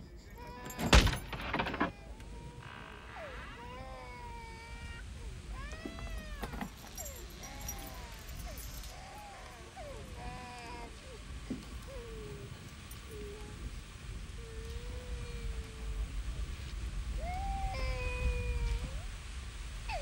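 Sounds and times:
cat meowing and yowling: 0:00.4 - 0:19.2.

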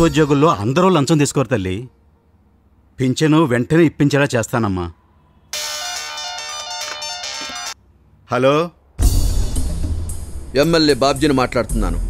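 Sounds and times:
mobile phone ringtone: 0:05.6 - 0:07.8.

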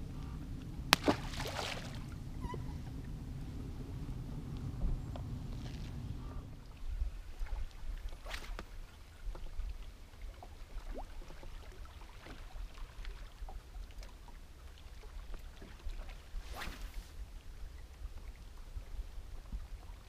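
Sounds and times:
low steady hum: 0:00.0 - 0:20.0
wind rumble on microphone: 0:00.0 - 0:20.0.

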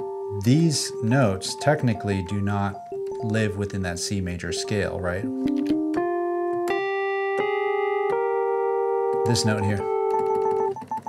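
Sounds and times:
synthesizer chords: 0:00.0 - 0:10.8.

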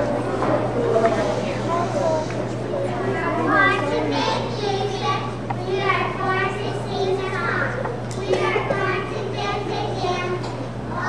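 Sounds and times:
steady low hum: 0:00.0 - 0:11.0
young children's voices: 0:00.9 - 0:11.0.

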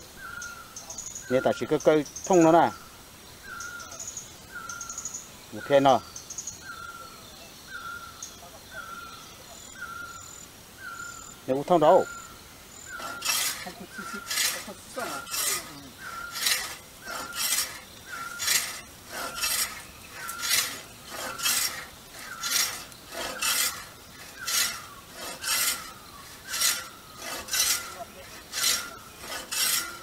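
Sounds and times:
hand saw cutting log: 0:12.9 - 0:30.0.

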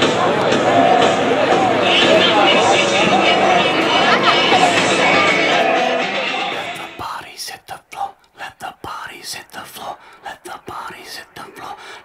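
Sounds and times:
loud dense mix: 0:00.0 - 0:07.0
faint music: 0:00.0 - 0:11.8
whispered voice: 0:06.7 - 0:11.9.

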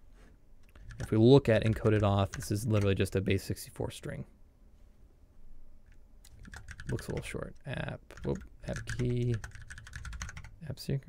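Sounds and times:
computer keyboard keystrokes: 0:00.7 - 0:03.0, 0:06.2 - 0:07.4, 0:08.1 - 0:10.5.

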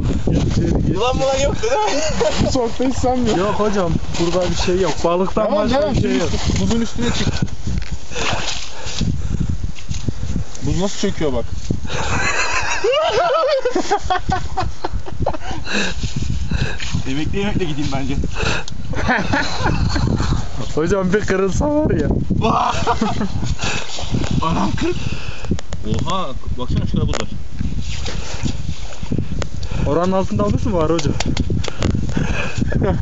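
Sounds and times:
man talking: 0:00.6 - 0:07.4
high-pitched laughter and squeals: 0:11.9 - 0:15.8.

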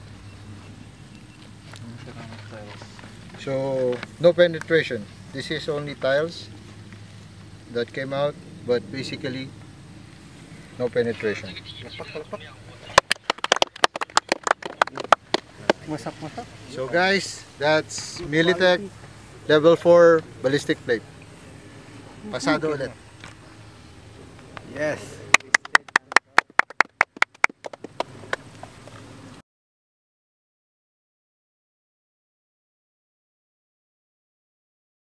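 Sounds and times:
hands clapping: 0:12.9 - 0:15.9, 0:25.3 - 0:28.4.

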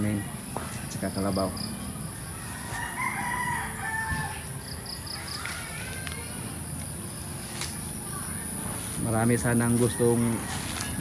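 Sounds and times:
rooster crowing: 0:02.3 - 0:04.7.

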